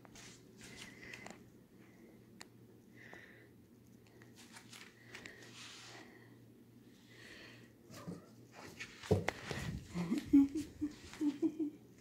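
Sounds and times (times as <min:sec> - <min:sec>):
soft rustles: 0:00.0 - 0:01.4.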